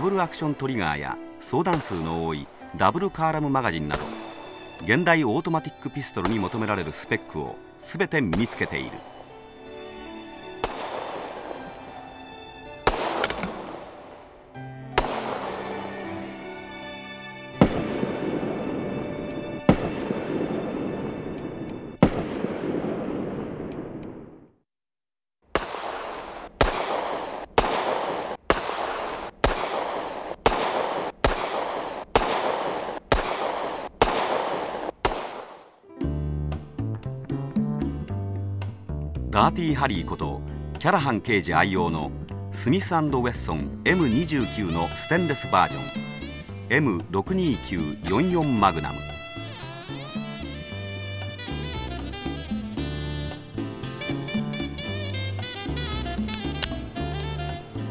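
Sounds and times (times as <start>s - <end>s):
pistol shots echoing: 1.7s - 2.7s, 10.6s - 11.9s, 12.8s - 14.4s, 15.0s - 16.1s, 17.6s - 21.1s, 22.0s - 24.3s, 25.5s - 35.8s
rapid pistol fire: 10.6s - 11.5s, 12.9s - 14.0s, 15.0s - 15.7s, 25.5s - 35.8s.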